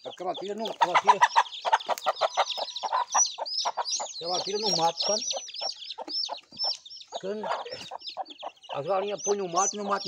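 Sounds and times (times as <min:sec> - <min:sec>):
chicks peeping: 0:00.0 - 0:10.0.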